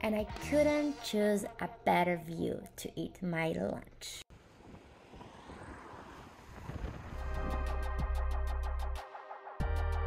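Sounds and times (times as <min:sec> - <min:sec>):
electronic music with heavy bass: 0:00.0 - 0:01.3
soft outdoor rushing: 0:04.3 - 0:08.6.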